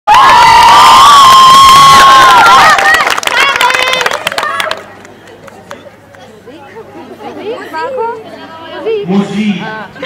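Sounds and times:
high-pitched cheering scream: 0.1s - 3.0s
crowd noise: 0.1s - 10.0s.

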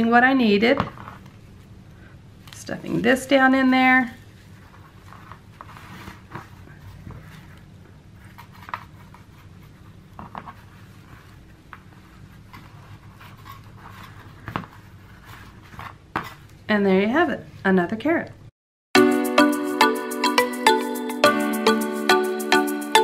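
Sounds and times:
fabric rustling: 2.4s - 16.6s.

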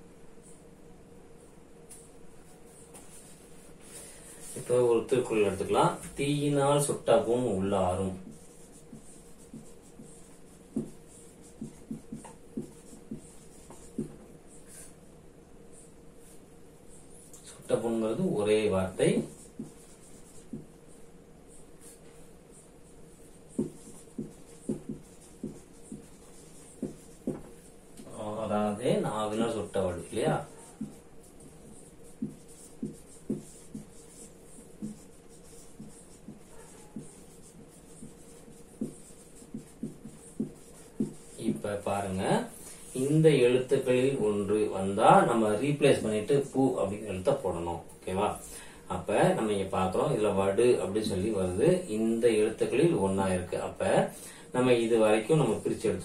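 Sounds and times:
faint steady hum: 0.0s - 56.0s
marker pen writing on whiteboard: 1.4s - 15.0s, 15.7s - 48.4s.

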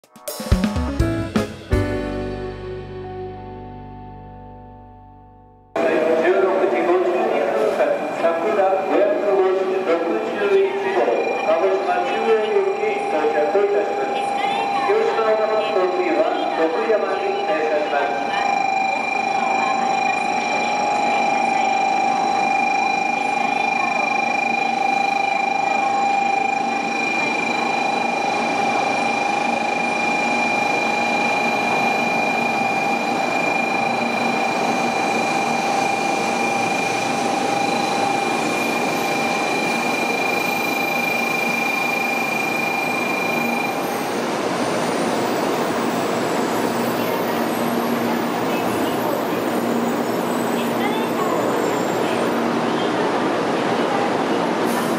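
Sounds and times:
steady high tones: 5.8s - 52.6s
train slowing along platform: 5.8s - 54.9s.

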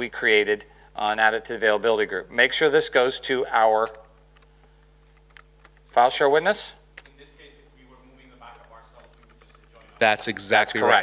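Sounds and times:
low electrical hum: 0.0s - 11.0s
typing on computer keyboard: 3.8s - 5.9s, 8.4s - 10.1s.

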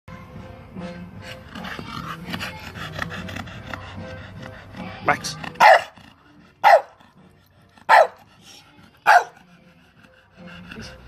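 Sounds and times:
dog panting: 0.9s - 11.0s.

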